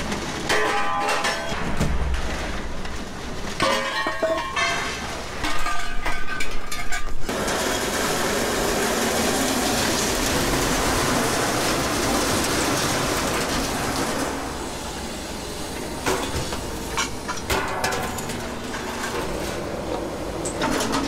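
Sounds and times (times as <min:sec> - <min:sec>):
scrap metal clanking and rattling: 0:00.4 - 0:08.7, 0:20.4 - 0:21.0.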